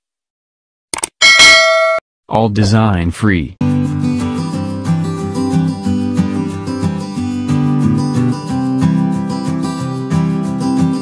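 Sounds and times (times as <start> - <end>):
notification bell ding: 1.2 - 2.0.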